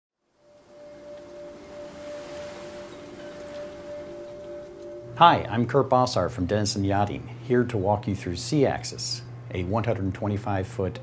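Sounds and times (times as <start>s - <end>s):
soft airy swell: 0.3s - 7.7s
bell-like ringing tone: 0.4s - 6.6s.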